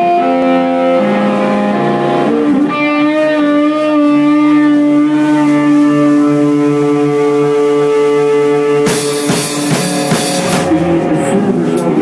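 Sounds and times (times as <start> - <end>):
electric guitar chords ringing: 0.0 - 12.0
rock band playing: 0.0 - 12.0
drum kit and cymbal crash: 8.8 - 11.9.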